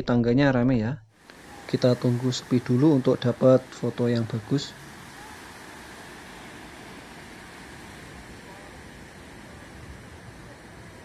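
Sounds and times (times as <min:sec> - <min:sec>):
ocean surf breaking: 0:01.1 - 0:11.0.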